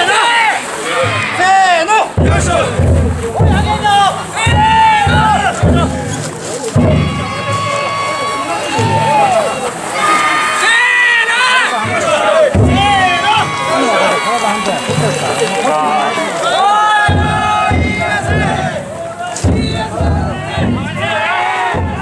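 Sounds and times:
men shouting and chanting: 0:00.0 - 0:22.0
low beat: 0:02.2 - 0:09.9, 0:11.8 - 0:16.2, 0:17.0 - 0:22.0.

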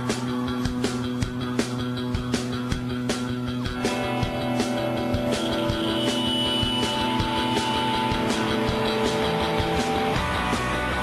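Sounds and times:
drum kit steady beat: 0:00.0 - 0:11.0
electric guitars: 0:00.0 - 0:11.0.

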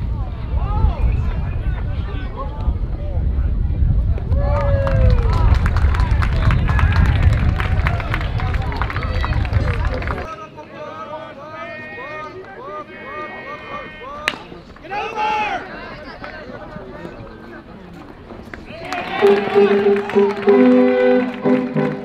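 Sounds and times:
fans and players cheering: 0:04.3 - 0:10.4, 0:18.7 - 0:22.0
player chatter: 0:08.2 - 0:22.0
bat hitting ball: 0:14.2 - 0:14.5.

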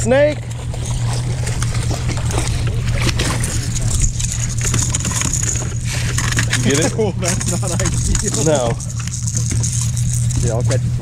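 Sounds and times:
fish thrashing and splashing: 0:00.0 - 0:11.0
steady low hum: 0:00.0 - 0:11.0.

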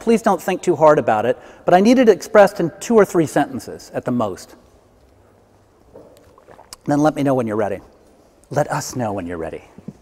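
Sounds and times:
man speaking: 0:00.0 - 0:04.7, 0:06.8 - 0:09.8.

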